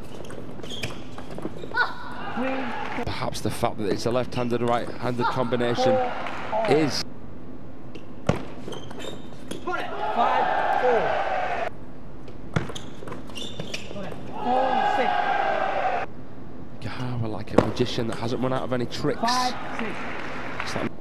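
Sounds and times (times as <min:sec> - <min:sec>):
crowd cheering and shouting: 0:02.0 - 0:03.0, 0:09.7 - 0:11.7, 0:14.3 - 0:16.1.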